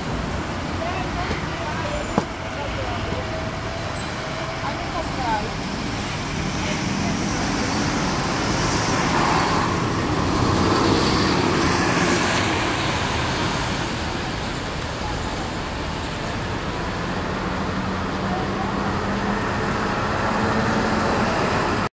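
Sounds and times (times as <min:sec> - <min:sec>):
bus pulling away: 0:00.0 - 0:21.9
busy street traffic: 0:00.0 - 0:21.9.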